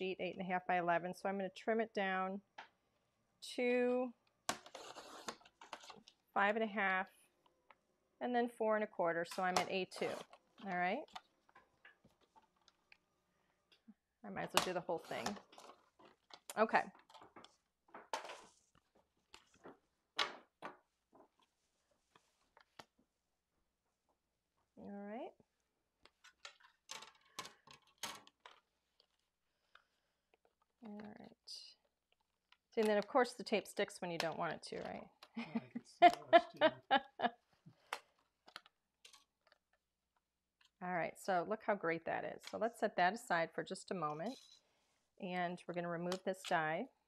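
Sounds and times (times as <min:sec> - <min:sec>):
person laughing: 0:35.4 - 0:37.3.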